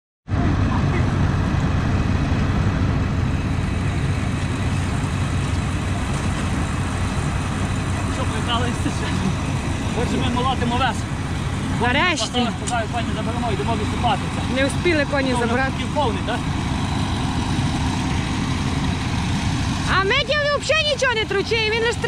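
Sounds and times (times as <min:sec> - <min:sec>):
harvester engine rumbling: 0:00.3 - 0:22.0.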